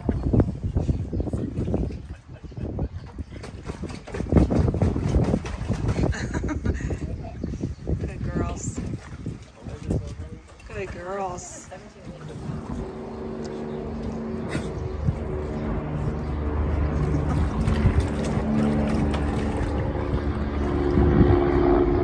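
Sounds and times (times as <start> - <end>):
dog splashing water in pool: 3.0 - 21.8
motor engine humming: 10.6 - 22.0.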